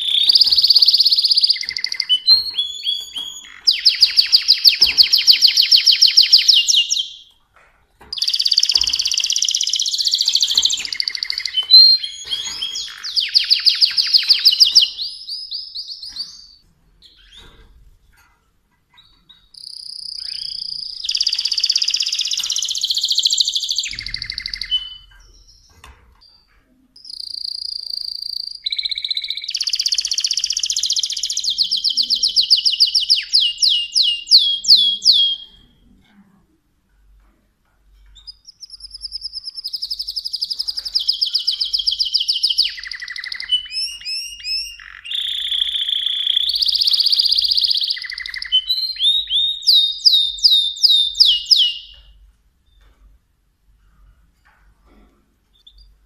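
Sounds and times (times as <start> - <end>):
canary singing trills: 0.0 - 7.4, 8.0 - 17.8, 18.9 - 36.0, 38.1 - 52.9.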